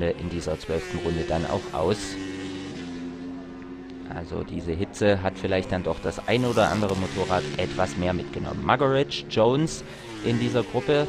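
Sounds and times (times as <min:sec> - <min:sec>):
motorcycle engine at high revs: 0:00.0 - 0:11.0.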